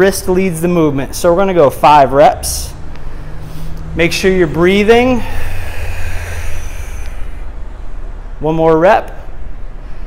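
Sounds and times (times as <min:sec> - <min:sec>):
low background rumble: 0:00.9 - 0:08.5.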